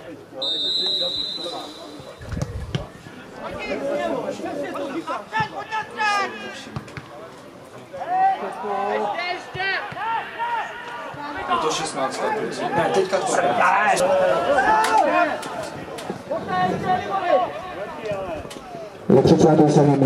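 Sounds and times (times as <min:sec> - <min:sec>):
referee's whistle blast: 0:00.4 - 0:02.2
players shouting: 0:07.9 - 0:18.8.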